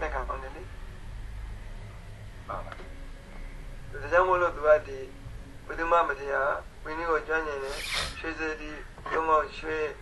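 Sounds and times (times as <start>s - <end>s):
short hiss: 7.6s - 8.2s.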